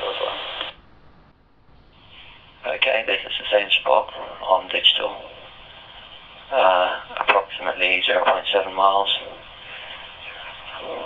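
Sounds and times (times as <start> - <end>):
radio voice: 0.0 - 0.8, 2.6 - 11.0
walkie-talkie hiss: 0.0 - 0.8, 1.9 - 11.0.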